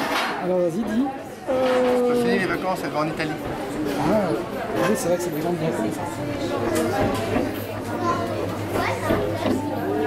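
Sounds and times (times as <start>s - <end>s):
people chattering: 0.0s - 10.0s
young child's voice: 7.9s - 9.6s.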